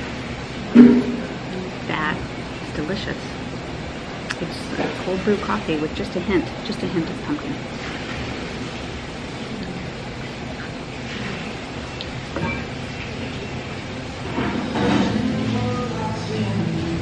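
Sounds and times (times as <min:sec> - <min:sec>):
coffee bar background rumble: 0:00.0 - 0:17.0.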